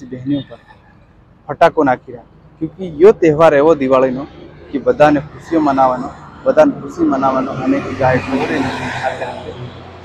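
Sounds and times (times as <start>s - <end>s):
road vehicle passing by: 2.3s - 10.0s.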